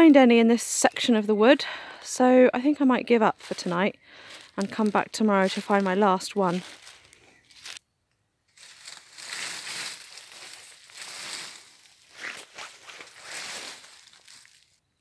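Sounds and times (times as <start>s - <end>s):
footsteps crunching dry leaves: 3.4s - 7.8s, 8.6s - 14.8s.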